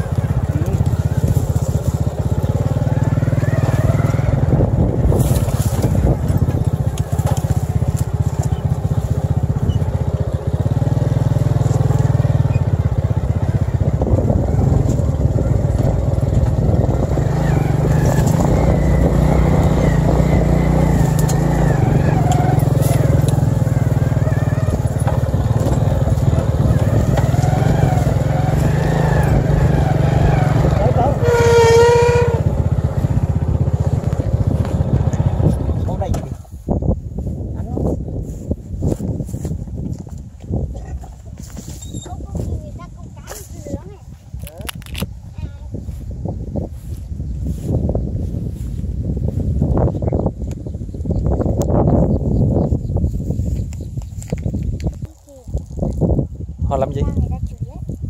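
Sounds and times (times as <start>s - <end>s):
small motorcycle engine running: 0.0s - 36.6s.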